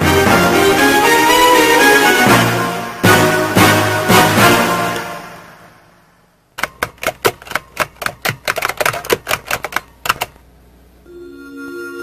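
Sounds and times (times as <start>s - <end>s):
keys typing: 6.6s - 10.4s.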